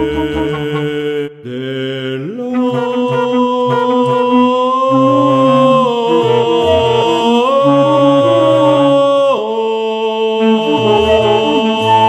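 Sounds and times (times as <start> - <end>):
baritone singing held notes: 0.0 - 12.0
bass clarinet: 2.5 - 9.2, 10.4 - 12.0
bass flute: 2.6 - 9.2, 10.4 - 12.0.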